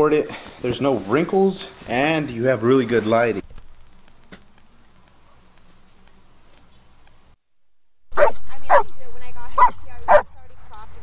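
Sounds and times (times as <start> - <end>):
dog barking: 8.1 - 8.9, 9.6 - 10.3.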